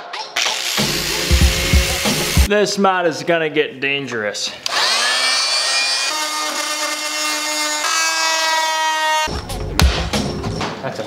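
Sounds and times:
rotary grinding tool whine: 0:00.4 - 0:02.5, 0:04.7 - 0:09.3.

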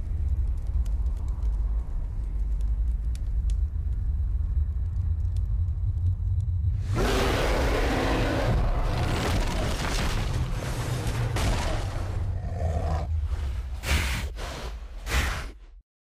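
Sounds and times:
faint crackles: 0:00.0 - 0:07.2
deep low rumble: 0:00.0 - 0:15.0.

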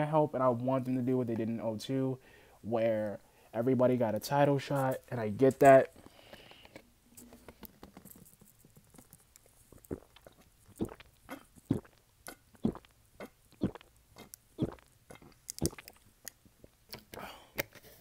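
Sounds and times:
person gulping a drink: 0:08.9 - 0:17.7.

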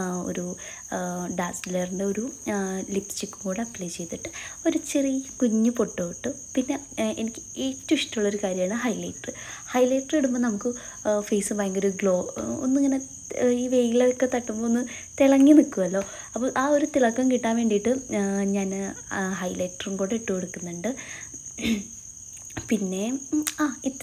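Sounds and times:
woman talking: 0:00.0 - 0:21.0, 0:22.5 - 0:24.0
crickets chirring: 0:00.0 - 0:24.0.

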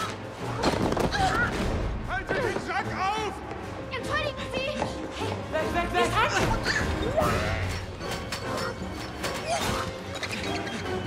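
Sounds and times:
film soundtrack music: 0:00.0 - 0:11.0.

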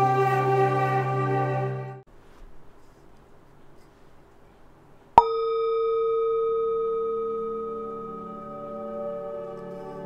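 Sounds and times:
singing bowl ringing: 0:05.2 - 0:10.0.

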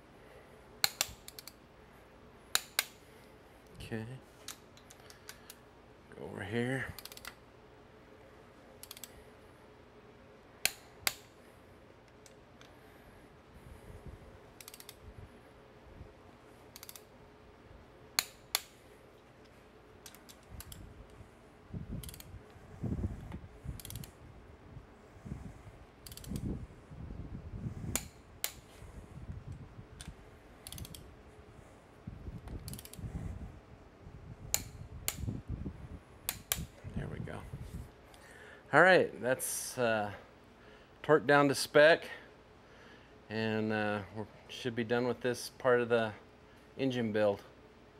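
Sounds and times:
ratchet clicking: 0:00.8 - 0:01.6, 0:07.0 - 0:07.4, 0:08.8 - 0:09.1, 0:14.6 - 0:15.0, 0:16.7 - 0:17.1, 0:22.0 - 0:22.3, 0:23.8 - 0:24.1, 0:26.0 - 0:26.5, 0:30.6 - 0:31.0, 0:32.6 - 0:33.0
torque wrench double clicks: 0:16.8 - 0:17.0, 0:26.0 - 0:26.5.

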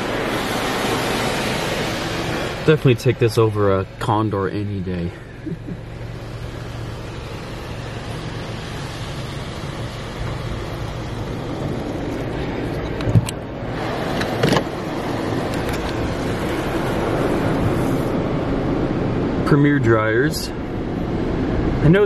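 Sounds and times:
dryer blowers: 0:00.0 - 0:02.8
car wash machine noise: 0:00.0 - 0:22.0.

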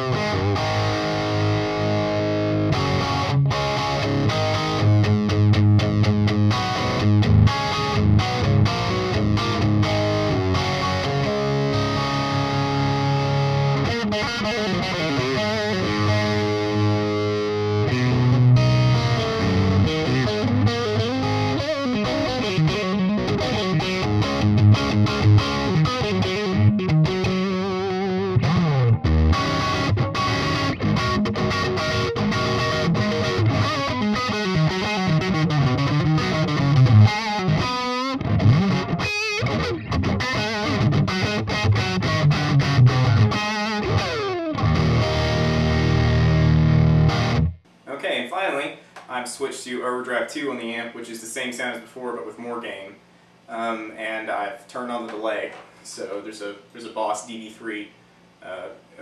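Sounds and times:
distorted electric guitar: 0:00.0 - 0:47.7.

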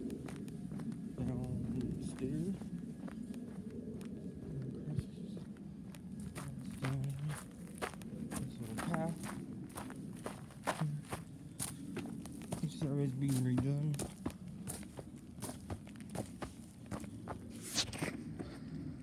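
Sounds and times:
footsteps on gravel and dirt: 0:00.0 - 0:18.5
person murmuring: 0:10.7 - 0:11.2.

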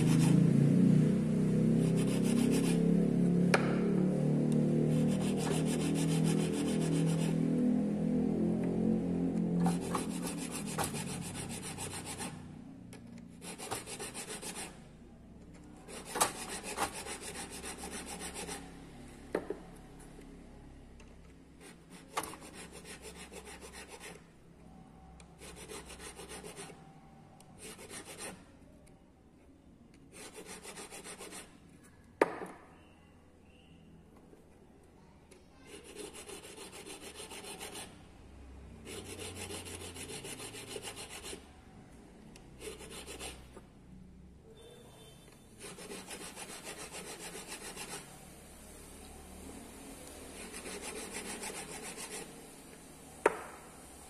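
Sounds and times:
sharp tap: 0:03.5 - 0:03.9, 0:53.2 - 0:53.7
file rasping on metal ring: 0:35.7 - 0:37.9, 0:45.6 - 0:48.1, 0:50.4 - 0:52.3.

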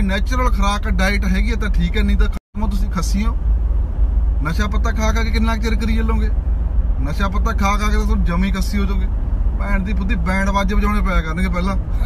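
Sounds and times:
man talking: 0:00.0 - 0:03.4, 0:04.4 - 0:06.4, 0:07.0 - 0:12.0
car cabin road and engine rumble: 0:00.0 - 0:12.0.

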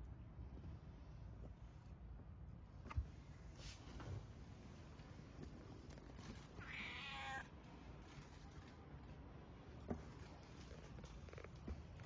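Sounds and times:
cat meowing: 0:06.6 - 0:07.5.

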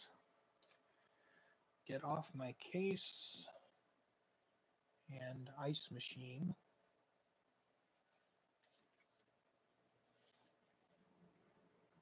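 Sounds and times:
paper record sleeves rustling: 0:07.9 - 0:11.2.

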